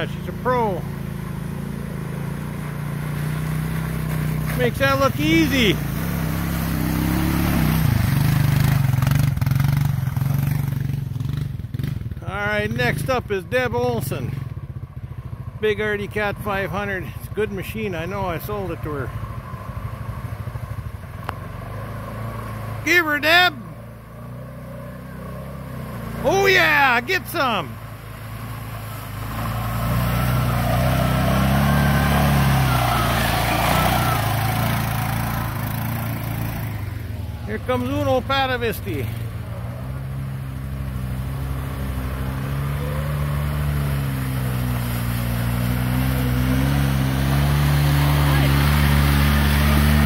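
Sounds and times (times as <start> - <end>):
quad bike engine at low revs: 0.0 - 50.0.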